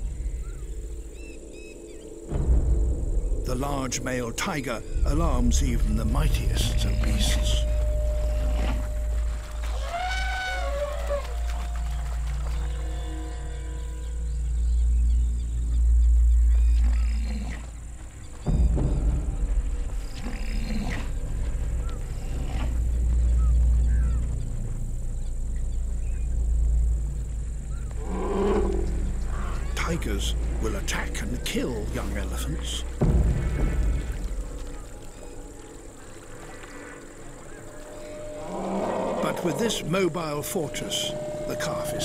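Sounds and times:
deep continuous rumble: 0:00.0 - 0:42.0
alarmed animal calls: 0:06.3 - 0:14.4.

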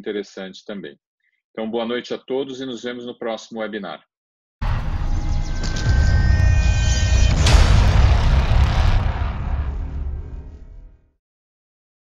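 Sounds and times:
deep rumble: 0:04.6 - 0:11.1
rushing whoosh: 0:05.6 - 0:11.0.

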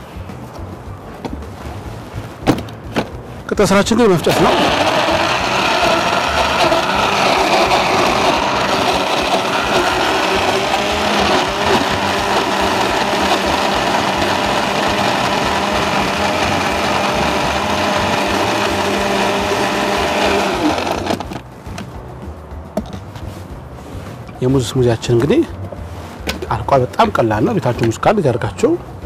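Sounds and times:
electric blender running: 0:04.2 - 0:21.4.

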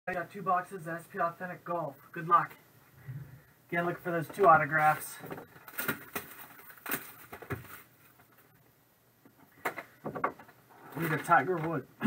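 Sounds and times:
plastic shrink wrap crinkling: 0:04.4 - 0:08.6.

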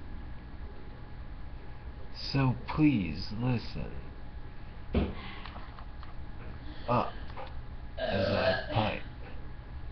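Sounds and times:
man saying uh: 0:06.9 - 0:07.2, 0:08.0 - 0:09.1
man burping: 0:08.0 - 0:09.0.

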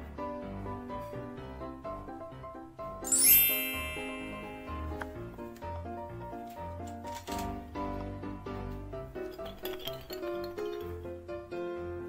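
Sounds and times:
light piano background music: 0:00.0 - 0:12.0
magic wand chime: 0:03.1 - 0:05.0.

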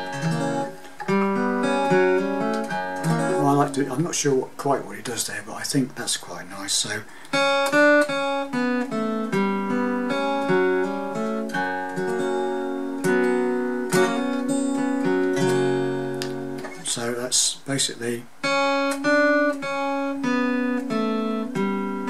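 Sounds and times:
acoustic guitar melody: 0:00.0 - 0:05.2, 0:07.1 - 0:22.0.

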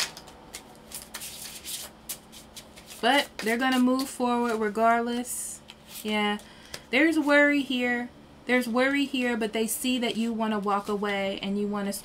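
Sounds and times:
cards shuffled rustling: 0:00.0 - 0:04.7, 0:05.7 - 0:06.8.

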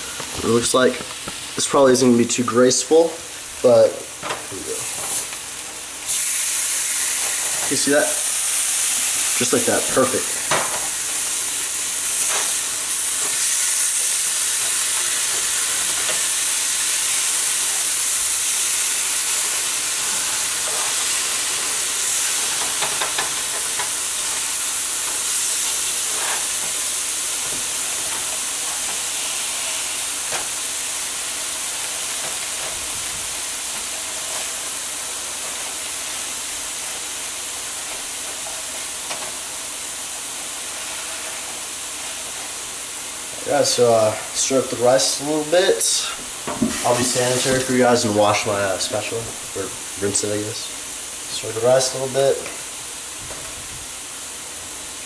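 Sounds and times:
chicken sizzling in frying pans: 0:00.0 - 0:55.0.

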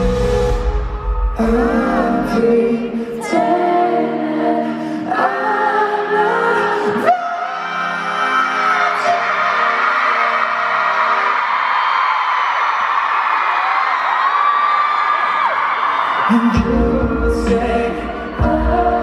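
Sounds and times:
crowd screaming and singing along: 0:00.0 - 0:19.0
man singing long notes: 0:01.1 - 0:04.6.

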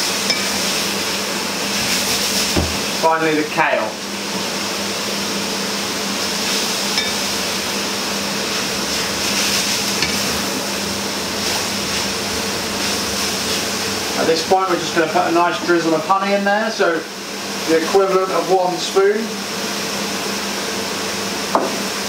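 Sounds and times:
food sizzling in a frying pan: 0:00.0 - 0:22.0.

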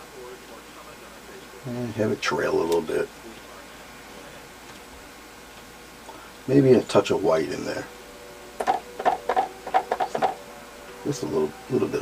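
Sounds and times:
sponge tapping into paint: 0:08.6 - 0:10.4.

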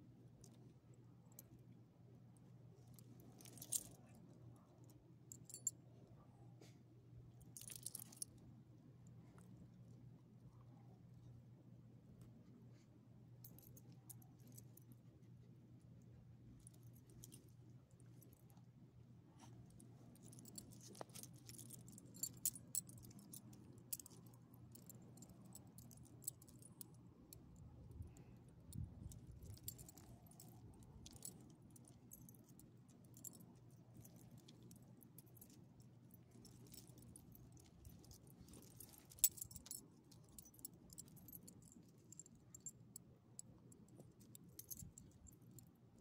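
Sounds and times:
dog collar tags jingling: 0:03.2 - 0:04.1, 0:07.4 - 0:08.3, 0:19.4 - 0:45.7.

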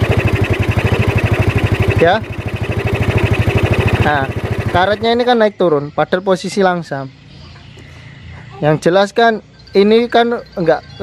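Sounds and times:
scooter engine idling: 0:00.0 - 0:05.4.

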